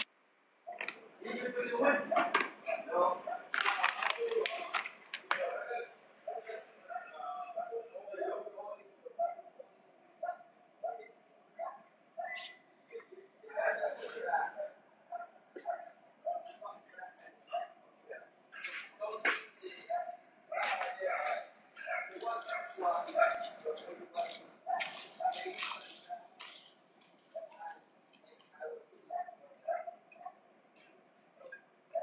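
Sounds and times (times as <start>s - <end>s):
indistinct talking: 0.7s - 32.0s
dog barking: 3.2s - 3.6s, 6.3s - 7.9s, 9.2s - 9.6s, 10.2s - 12.6s, 15.1s - 17.8s, 19.8s - 26.4s, 27.3s - 27.8s, 28.6s - 30.4s, 31.4s - 32.0s.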